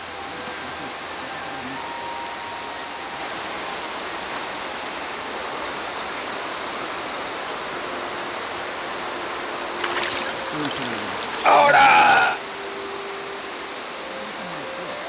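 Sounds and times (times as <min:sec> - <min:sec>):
river water running over stones: 0:00.1 - 0:14.1.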